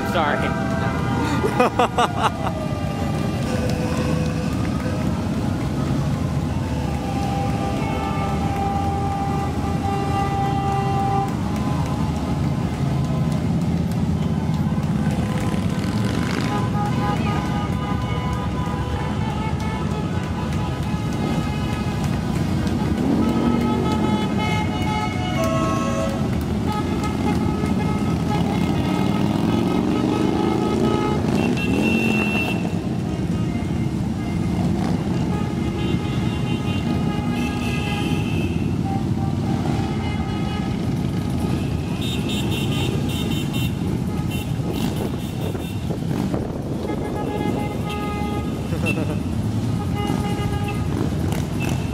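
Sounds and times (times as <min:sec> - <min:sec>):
motorcycles riding past: 0:00.0 - 0:19.4, 0:20.0 - 0:51.9.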